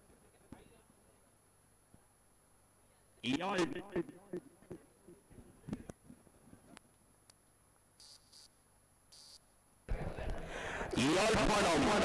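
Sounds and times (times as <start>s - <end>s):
short high-pitched hissing bursts: 8.0s - 9.4s.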